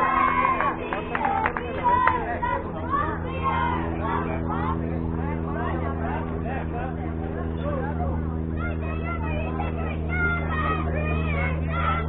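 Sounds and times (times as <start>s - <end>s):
indistinct chatter: 0.0s - 12.0s
low steady hum: 0.0s - 12.0s.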